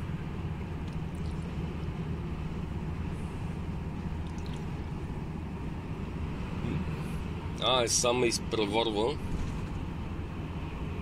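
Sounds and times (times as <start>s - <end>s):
road noise: 0.0s - 11.0s
truck engine drone: 0.0s - 11.0s.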